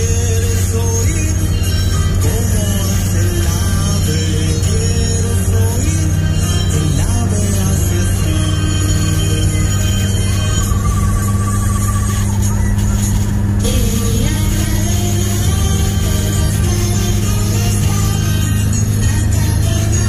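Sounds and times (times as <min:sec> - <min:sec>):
car driving rumble: 0:00.0 - 0:20.0
music from car stereo: 0:00.0 - 0:20.0.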